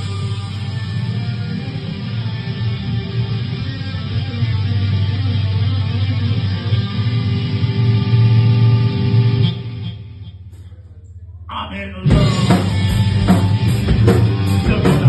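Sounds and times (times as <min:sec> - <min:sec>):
rock band playing: 0:00.0 - 0:10.5, 0:12.0 - 0:15.0.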